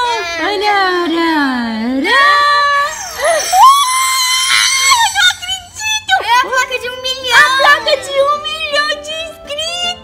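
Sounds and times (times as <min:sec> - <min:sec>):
children screaming: 0:02.6 - 0:05.6.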